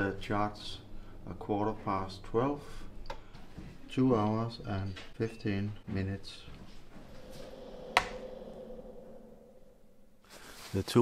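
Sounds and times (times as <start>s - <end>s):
faint steady hum: 0.0s - 10.9s.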